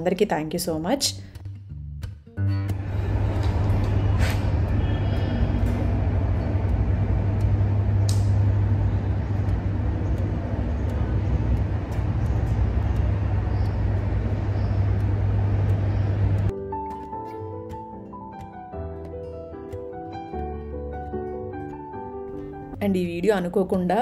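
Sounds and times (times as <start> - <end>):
low hum and rumble: 2.6 - 16.5.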